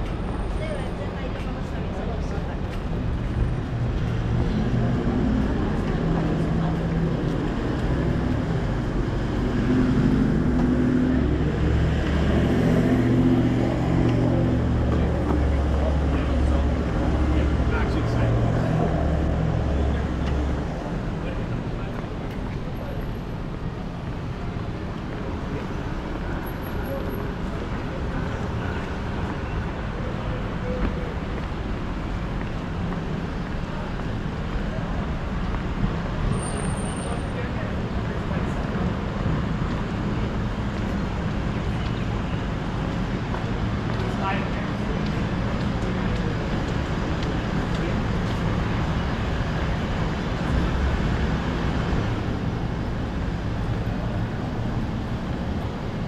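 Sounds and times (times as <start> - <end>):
heavy vehicle engine droning: 0.0 - 56.0
passers-by talking: 0.0 - 56.0
street traffic: 0.0 - 56.0.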